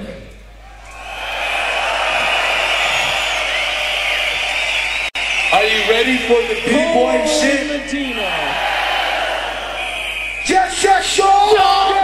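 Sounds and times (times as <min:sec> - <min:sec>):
crowd cheering and screaming: 0:00.6 - 0:12.0
shrill whistles: 0:00.8 - 0:07.3, 0:07.9 - 0:11.9.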